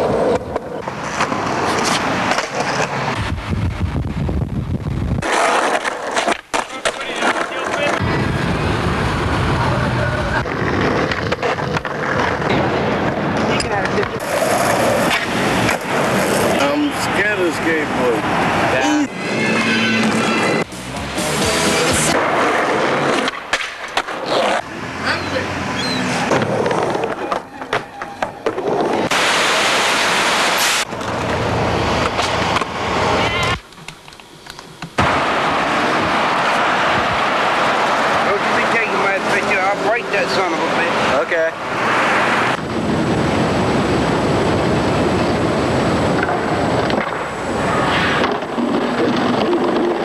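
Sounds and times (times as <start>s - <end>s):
skateboards clacking on ground: 0.0s - 3.2s, 5.2s - 8.2s, 9.6s - 17.1s, 21.8s - 24.7s, 26.2s - 29.2s, 30.8s - 35.2s, 46.0s - 50.0s
skateboard wheels rolling on concrete: 0.0s - 50.0s
music: 19.6s - 22.1s.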